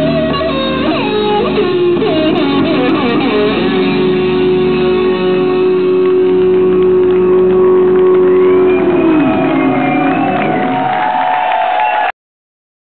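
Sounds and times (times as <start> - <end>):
rock band sustained chord: 0.0 - 11.2
audience whistling: 6.5 - 12.1
audience shouting: 7.8 - 12.1.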